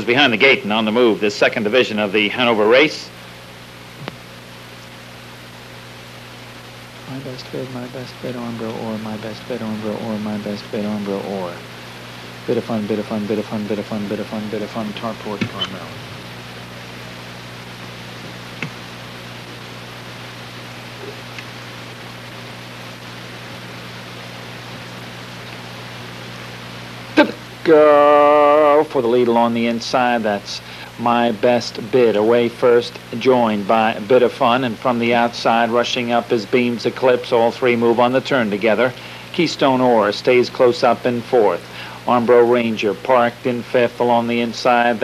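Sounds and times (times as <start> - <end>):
low electrical hum: 0.0 - 45.0
steady hiss: 0.0 - 45.0.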